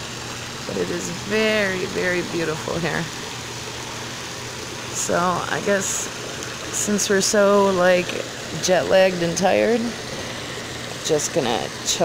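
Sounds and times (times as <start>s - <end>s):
hot tub jets bubbling: 0.0s - 12.0s
low pump hum: 0.0s - 12.0s.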